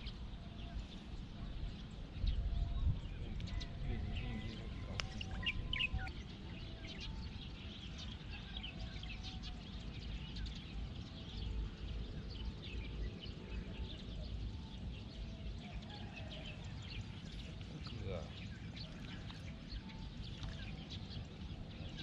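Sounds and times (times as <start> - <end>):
constant low rumble: 0.0 - 15.9
birds chirping: 0.0 - 22.0.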